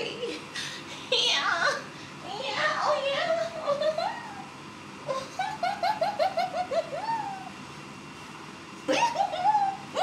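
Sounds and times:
woman laughing: 0:05.1 - 0:07.4, 0:08.9 - 0:10.0.

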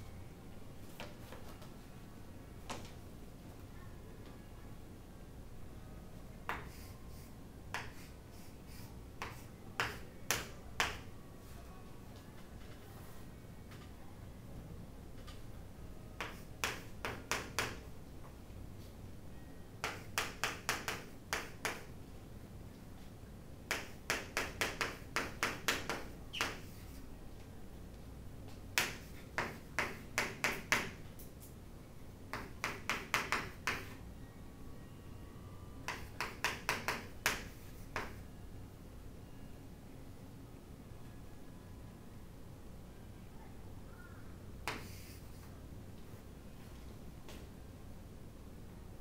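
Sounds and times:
chalk tapping on chalkboard: 0:06.5 - 0:06.9, 0:07.7 - 0:11.0, 0:16.2 - 0:17.8, 0:19.8 - 0:21.9, 0:23.7 - 0:27.0, 0:28.8 - 0:31.0, 0:32.3 - 0:34.0, 0:35.9 - 0:38.2, 0:44.6 - 0:45.2.

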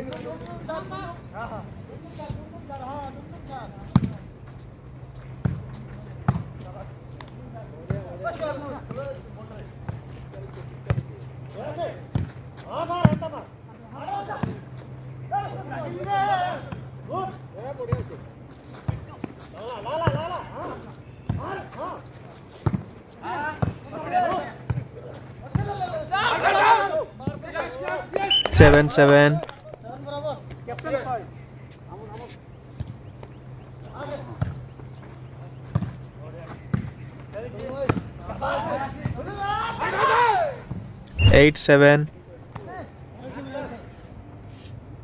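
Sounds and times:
players calling out: 0:25.6 - 0:29.4, 0:37.2 - 0:43.4.

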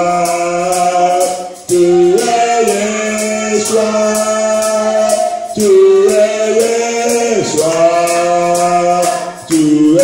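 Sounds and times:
voices singing worship: 0:00.0 - 0:10.0.

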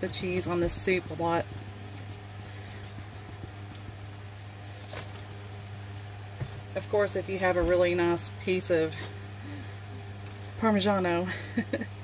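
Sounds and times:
steady low hum: 0:00.0 - 0:12.0
light taps of shaker: 0:00.8 - 0:04.2.

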